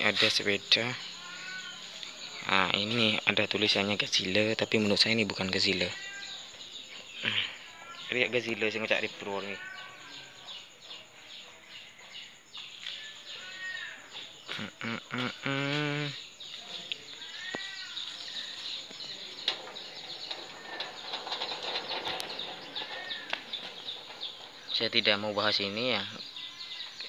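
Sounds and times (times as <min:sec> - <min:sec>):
small birds chirping: 0:00.0 - 0:27.0.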